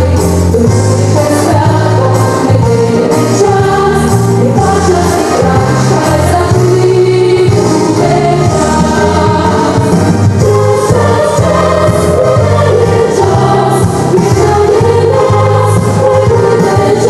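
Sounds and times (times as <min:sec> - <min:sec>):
children's choir singing jazz: 0:00.0 - 0:17.0
instrumental accompaniment: 0:00.0 - 0:17.0.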